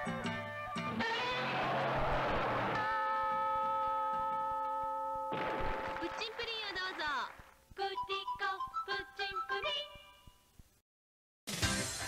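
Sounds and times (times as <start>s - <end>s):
high-pitched singing voice: 7.8s - 10.3s.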